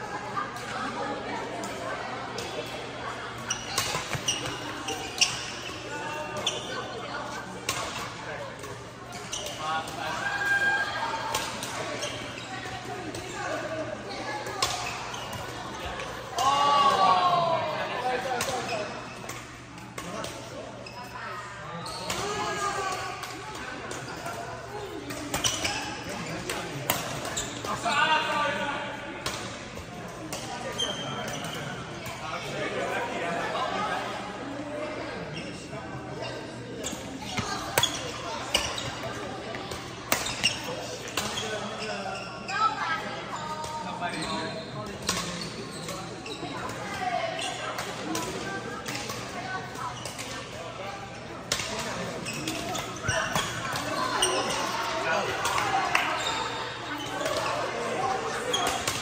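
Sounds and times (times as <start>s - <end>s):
voices calling and chatting: 0.0s - 59.0s.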